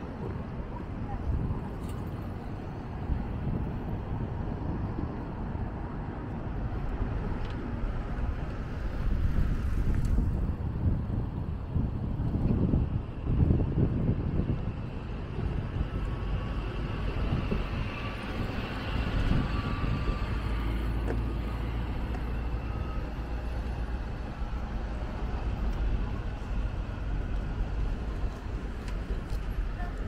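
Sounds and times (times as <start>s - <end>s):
road traffic rumble: 0.0s - 30.0s.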